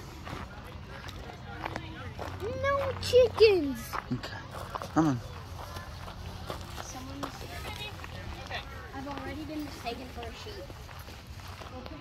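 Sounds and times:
faint voices: 0.0s - 12.0s
footsteps on gravel: 0.0s - 12.0s.

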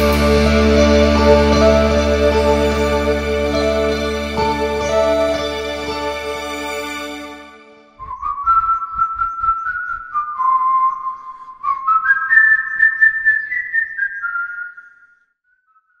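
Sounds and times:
whistled melody: 0.0s - 16.0s.

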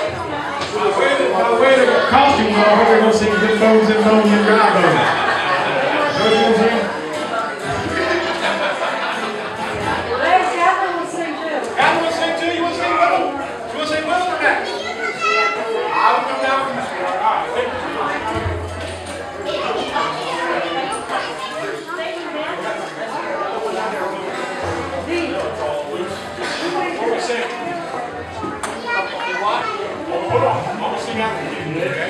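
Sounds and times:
children talking and calling out: 0.0s - 31.6s.

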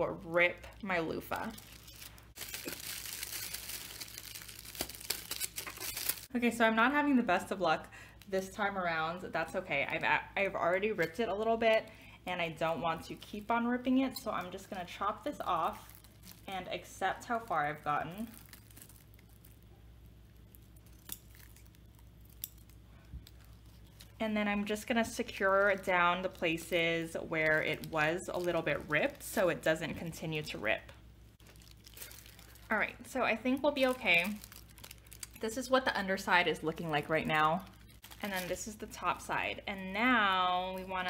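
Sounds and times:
plastic film crinkling: 0.6s - 6.4s, 14.2s - 30.6s, 31.4s - 41.0s.

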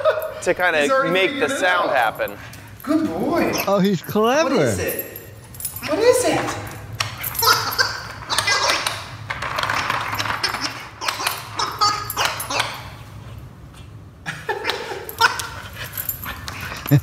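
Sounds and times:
dog yipping and whining: 7.2s - 9.1s, 9.7s - 13.0s
dog toy giggle noisemaker: 10.2s - 13.0s, 14.3s - 15.7s.

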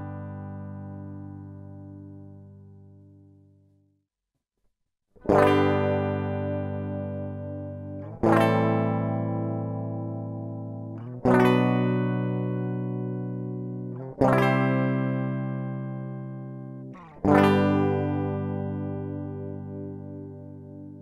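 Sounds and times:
electric guitar chords ringing: 0.0s - 3.2s, 5.2s - 21.0s.

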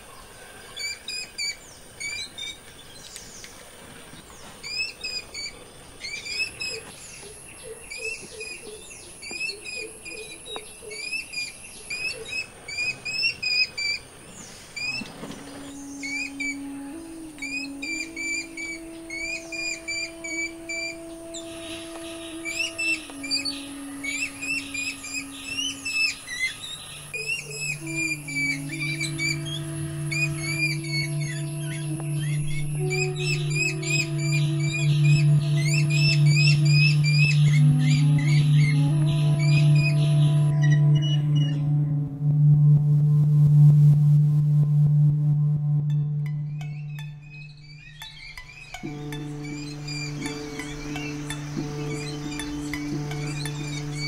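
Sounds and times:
music score of held tones: 11.6s - 54.0s
deep drone: 15.4s - 48.1s, 48.8s - 54.0s.

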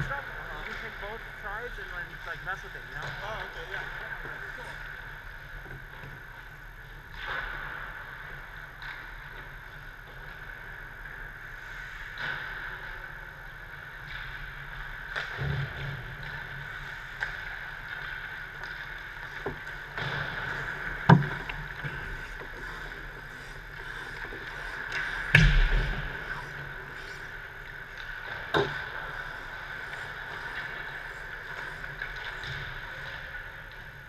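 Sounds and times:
steady hum: 10.6s - 34.0s
skates scraping on ice: 15.7s - 34.0s
sticks and pucks cracking: 16.8s - 34.0s.

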